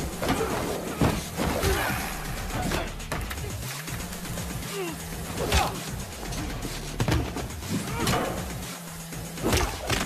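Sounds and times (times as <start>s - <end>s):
low music drone: 0.0s - 10.0s.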